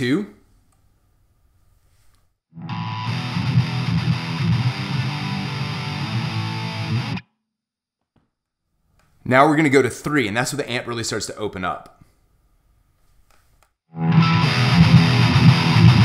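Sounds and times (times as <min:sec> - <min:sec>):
distorted electric guitar riff: 0:02.6 - 0:07.3, 0:14.0 - 0:16.0.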